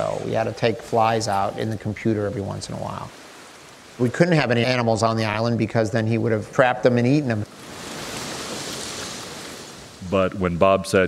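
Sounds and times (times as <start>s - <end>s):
ocean surf on a beach: 0.0s - 10.1s.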